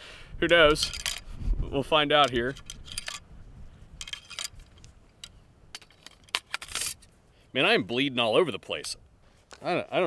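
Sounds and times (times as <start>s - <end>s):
metallic clicks of shells loading: 0.7s - 1.3s, 2.2s - 3.3s, 4.0s - 7.1s.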